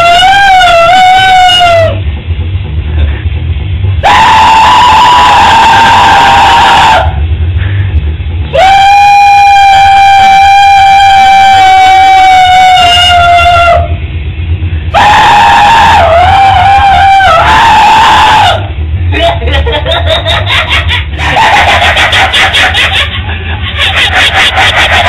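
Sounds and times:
high-pitched screaming squeals: 0:04.0 - 0:07.2, 0:14.9 - 0:18.7.

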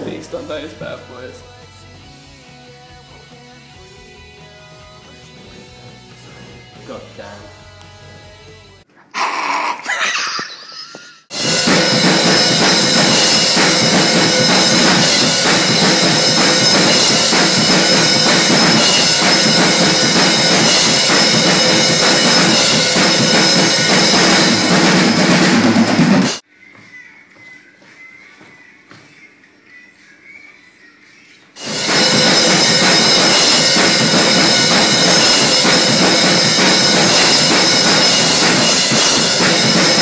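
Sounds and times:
drum kit played hard: 0:11.3 - 0:26.4, 0:31.6 - 0:40.0.

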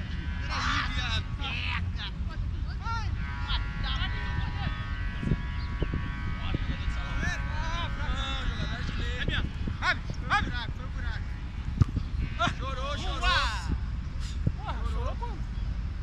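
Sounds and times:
distant footballers calling out: 0:00.0 - 0:16.0
steady low rumble: 0:00.0 - 0:16.0.

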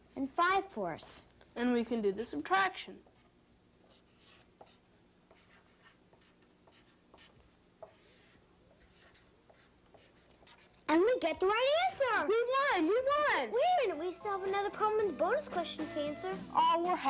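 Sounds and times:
marker squeaking on paper: 0:03.9 - 0:10.8.

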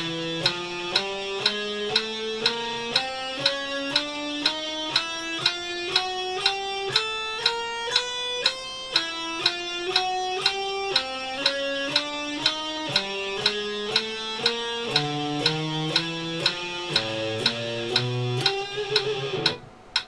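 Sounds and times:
electric guitar picking notes: 0:00.0 - 0:20.0
metronome clicking: 0:00.0 - 0:20.0.

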